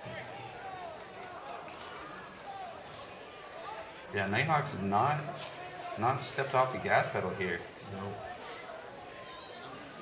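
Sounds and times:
background murmur: 0:00.0 - 0:10.0.

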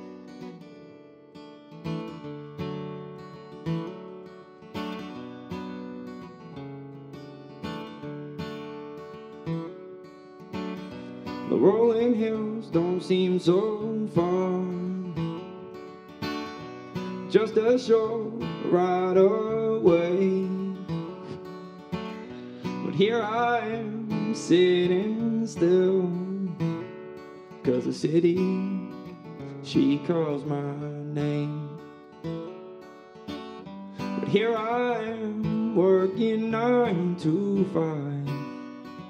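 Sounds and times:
acoustic guitar playing: 0:00.0 - 0:39.0
man singing: 0:11.2 - 0:15.5, 0:17.1 - 0:21.8, 0:22.6 - 0:26.9, 0:27.5 - 0:32.0, 0:34.0 - 0:38.6.

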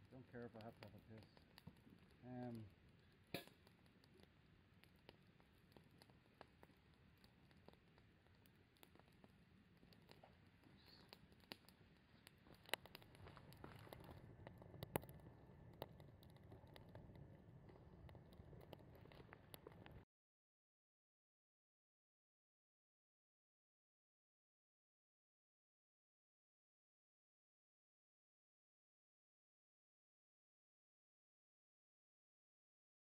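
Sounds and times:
campfire crackling and popping: 0:00.0 - 0:20.0.

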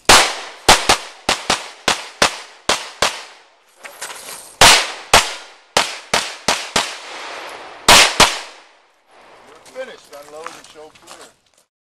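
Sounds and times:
echo of rapid shots: 0:00.1 - 0:03.4, 0:04.6 - 0:08.7
pistol shots echoing: 0:00.1 - 0:03.4, 0:04.6 - 0:08.7.

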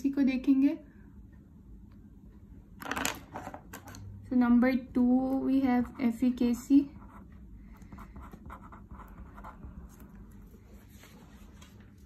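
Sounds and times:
pen scratching on paper: 0:05.8 - 0:10.3.

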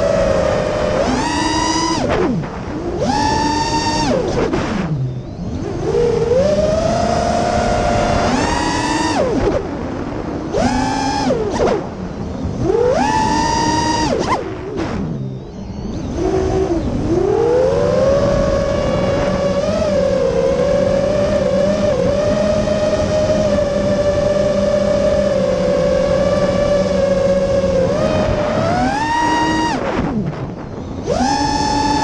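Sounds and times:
quadcopter motors whining: 0:00.0 - 0:32.0.

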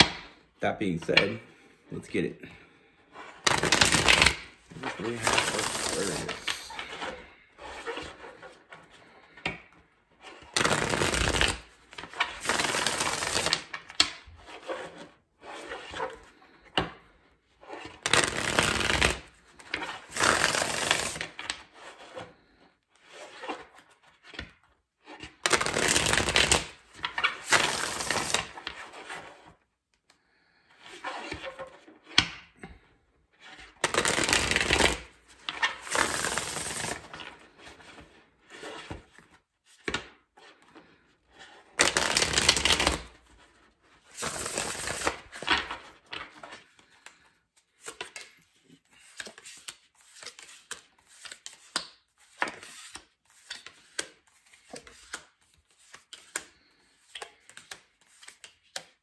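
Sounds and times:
cards shuffling: 0:03.4 - 0:09.4, 0:10.3 - 0:15.0, 0:17.8 - 0:22.2, 0:25.0 - 0:29.5, 0:33.4 - 0:59.0.

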